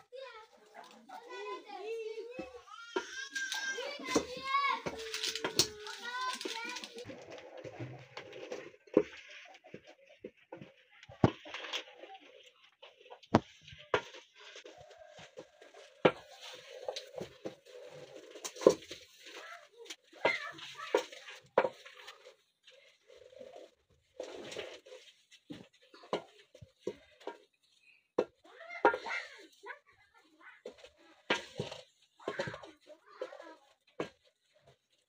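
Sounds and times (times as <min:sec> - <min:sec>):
spoon stirring thick porridge: 0:00.2 - 0:35.0.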